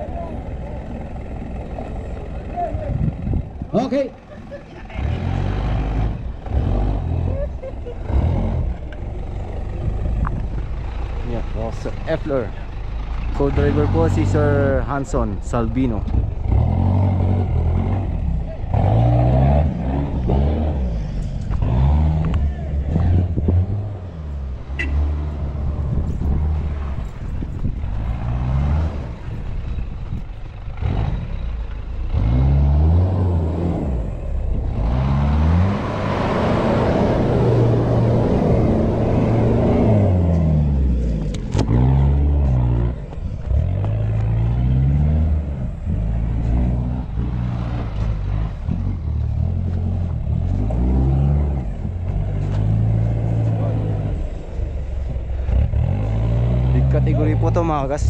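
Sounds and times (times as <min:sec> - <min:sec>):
off-road engine revving: 0:00.0 - 0:58.0.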